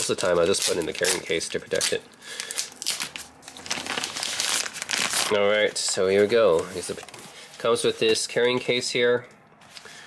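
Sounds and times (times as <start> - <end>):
wrapping film crinkling: 0.0 - 7.7.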